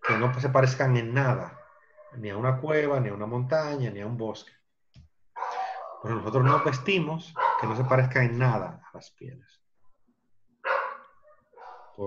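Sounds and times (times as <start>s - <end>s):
dog barking loudly: 0.0s - 0.7s, 5.4s - 8.0s, 10.6s - 12.0s.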